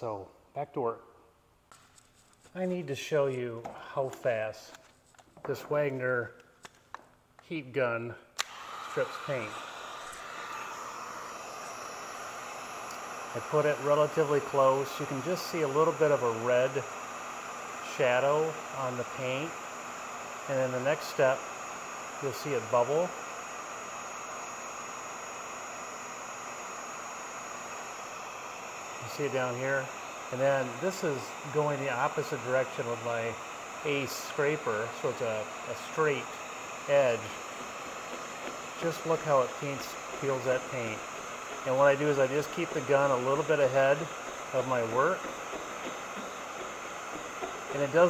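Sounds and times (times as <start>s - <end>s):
heat gun blowing hot air: 8.4s - 48.0s.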